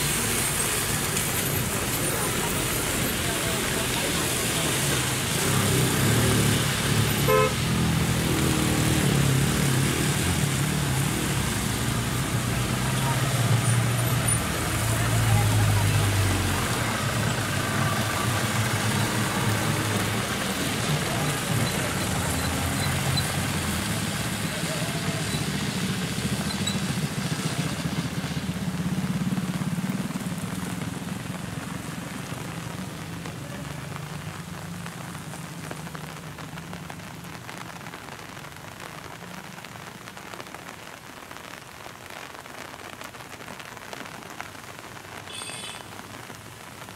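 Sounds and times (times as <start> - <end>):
rain and wet tyres hissing: 0.0 - 46.9
vehicles passing: 0.0 - 46.9
vehicle horn toot: 7.3 - 7.6, 45.3 - 45.9.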